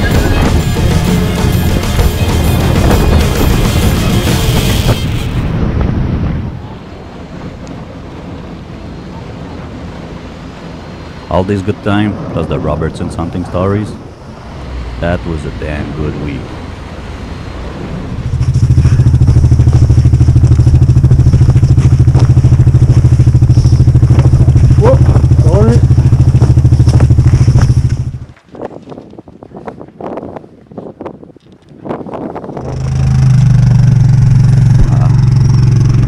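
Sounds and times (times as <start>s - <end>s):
outboard motor running: 0.0s - 5.4s, 17.6s - 28.3s, 32.6s - 36.0s
crackle and clatter: 18.3s - 29.9s.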